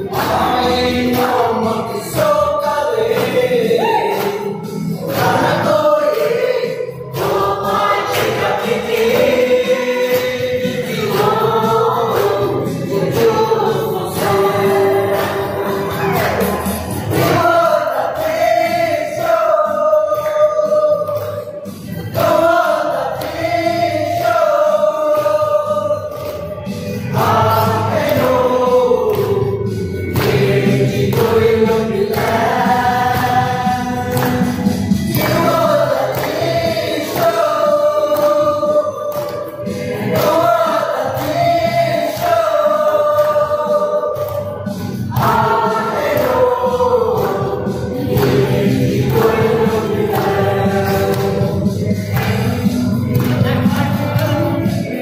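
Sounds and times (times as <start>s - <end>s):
group singing in unison: 0.0s - 55.0s.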